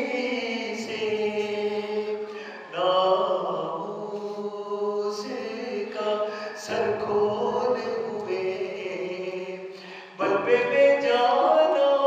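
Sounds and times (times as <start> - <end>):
man chanting poetry: 4.6 - 12.0.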